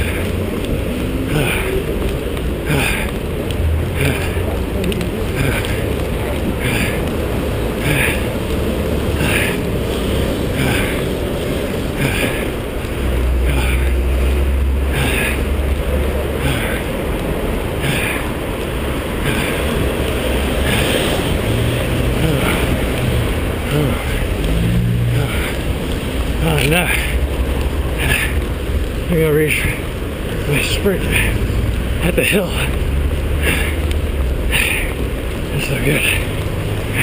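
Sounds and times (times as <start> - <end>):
low rumble of street traffic: 0.0 - 37.0
runner breathing: 0.0 - 37.0.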